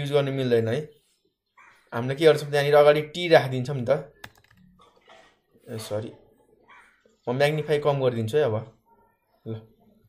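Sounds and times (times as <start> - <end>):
man speaking: 0.0 - 1.0, 2.0 - 4.2, 5.6 - 6.2, 7.2 - 8.8
keyboard keystrokes: 4.2 - 4.7.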